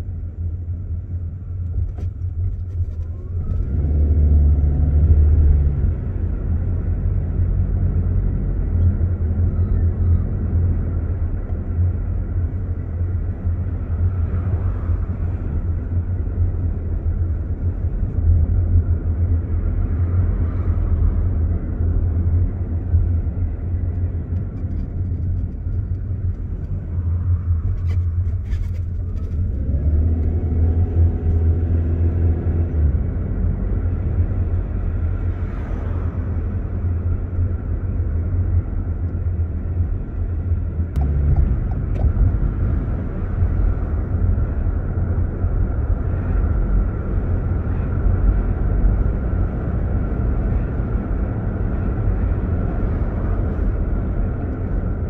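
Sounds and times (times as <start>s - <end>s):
car engine and tyres rumbling: 0.0s - 55.0s.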